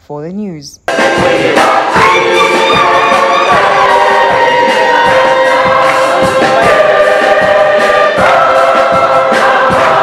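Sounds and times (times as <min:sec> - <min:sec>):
choir singing held chords: 0:00.9 - 0:10.0
steady drum beat: 0:00.9 - 0:10.0
flute: 0:02.0 - 0:06.7.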